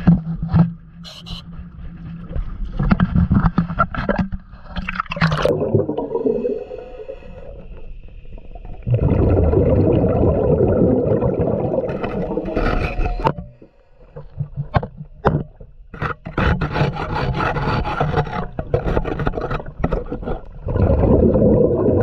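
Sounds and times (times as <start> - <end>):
underwater scraping: 0.0 - 15.1, 15.9 - 22.0.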